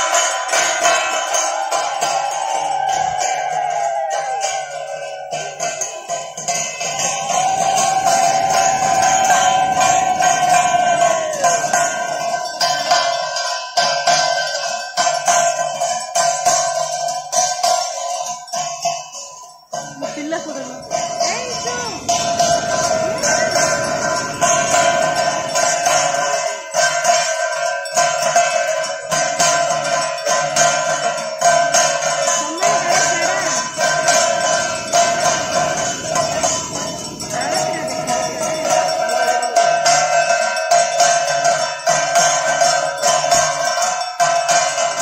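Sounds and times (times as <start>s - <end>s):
bells and cymbals jangling: 0.0s - 45.0s
conch shell blown: 1.2s - 12.2s.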